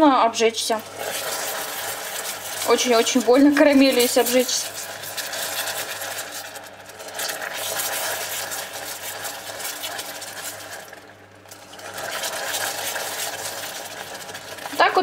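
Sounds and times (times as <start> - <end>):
caramel bubbling and sizzling: 0.0 - 15.0
spatula stirring: 0.7 - 15.0.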